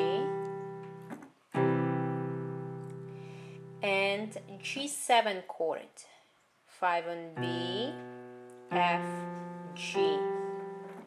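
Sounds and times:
piano chord ringing: 0.0 - 4.7, 7.4 - 11.0.

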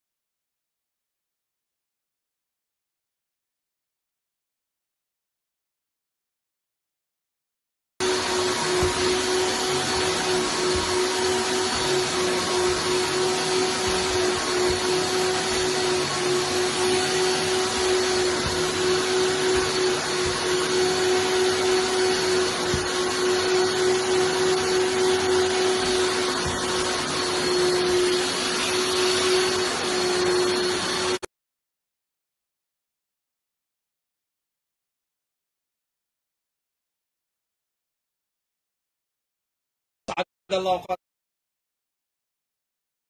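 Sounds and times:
vacuum cleaner running: 8.0 - 31.3.

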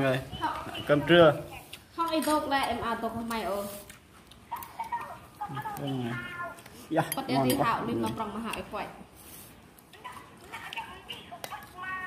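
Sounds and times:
spoons clinking on bowls: 7.0 - 8.2.

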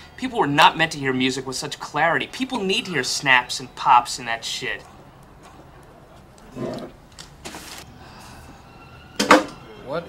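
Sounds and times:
handling rustles: 7.1 - 7.9.

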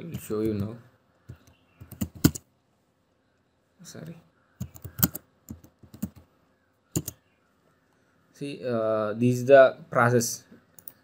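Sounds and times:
keyboard key clicks: 4.6 - 6.2.

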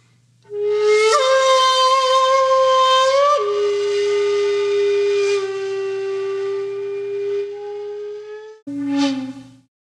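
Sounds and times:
flute-like wind instrument notes: 0.5 - 9.7.

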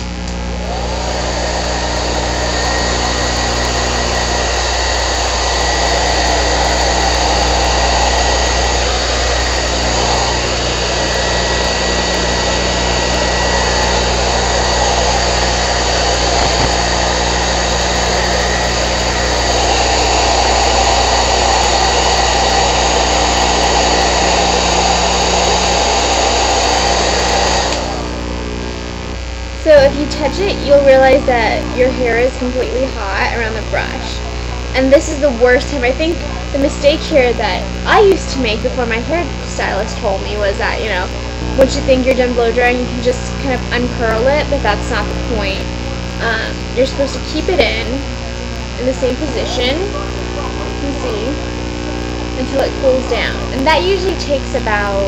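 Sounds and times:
hair dryer blowing: 0.0 - 55.0.

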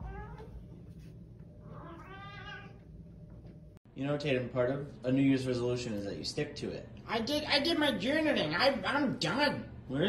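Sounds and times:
cat meowing: 0.0 - 0.5, 1.6 - 2.8.

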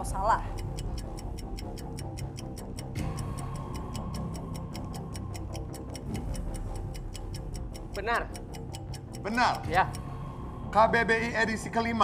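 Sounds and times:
countdown clock ticking: 0.0 - 12.0
low suspense music: 0.0 - 12.0.

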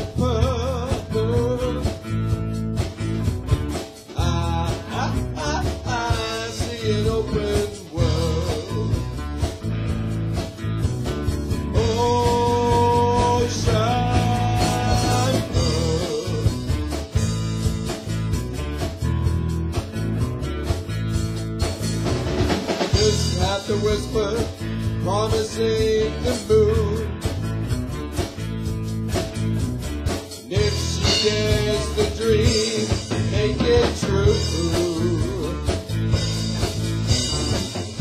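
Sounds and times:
rock band playing: 0.0 - 38.0.

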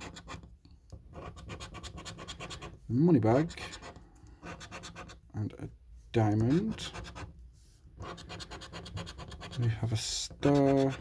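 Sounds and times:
coin scratching a scratch card: 0.0 - 0.5, 1.1 - 2.8, 3.4 - 5.2, 6.4 - 7.3, 8.0 - 9.8, 10.4 - 11.0.

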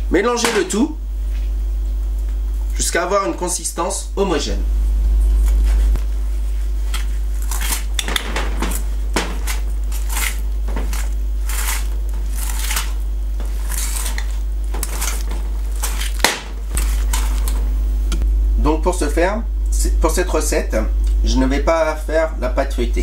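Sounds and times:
low steady hum: 0.0 - 23.0.

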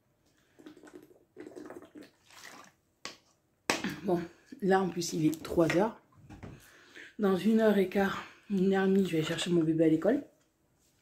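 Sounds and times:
person gulping water: 0.4 - 2.8
water moving in plastic bottle: 0.4 - 3.3.

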